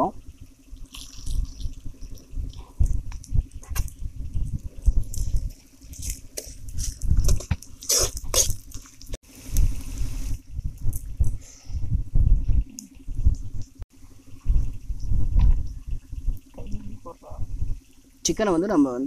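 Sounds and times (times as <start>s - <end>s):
low rumble: 0.0s - 7.9s, 9.0s - 18.9s.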